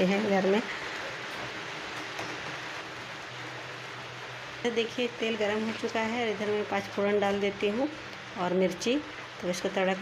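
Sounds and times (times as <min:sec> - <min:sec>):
heavy rain hiss: 0:00.0 - 0:10.0.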